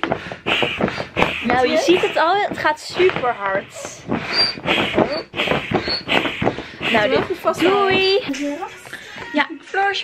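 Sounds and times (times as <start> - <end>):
pump squeaking: 0.0 - 8.3
air pump strokes: 0.0 - 9.2.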